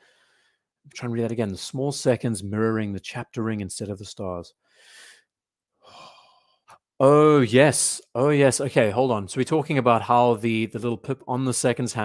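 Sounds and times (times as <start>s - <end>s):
person breathing softly: 0.0s - 0.7s, 4.6s - 6.8s
person speaking: 7.0s - 12.0s.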